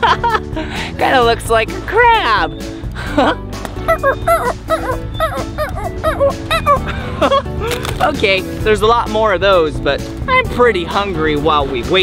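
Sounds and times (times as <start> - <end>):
background music: 0.0 - 12.0
high-pitched squeaky chirps: 3.8 - 6.9.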